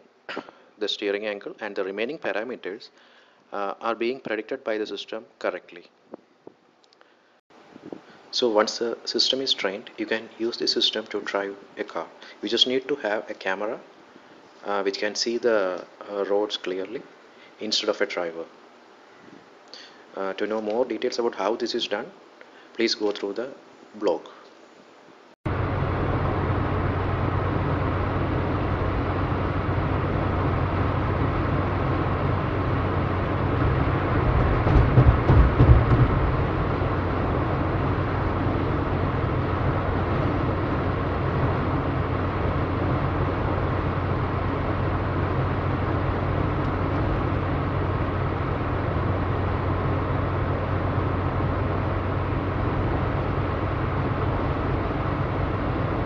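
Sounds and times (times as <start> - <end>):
car road and engine noise: 25.5 - 56.0
low rumble: 25.5 - 56.0.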